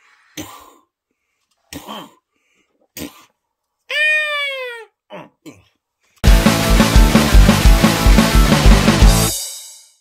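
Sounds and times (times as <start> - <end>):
high cry: 3.9 - 5.0.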